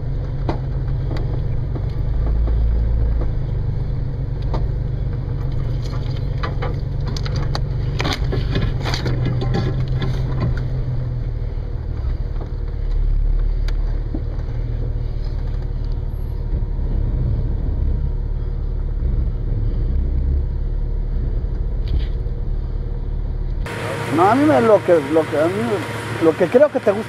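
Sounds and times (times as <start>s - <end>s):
off-road vehicle engine rumble: 0.0s - 27.0s.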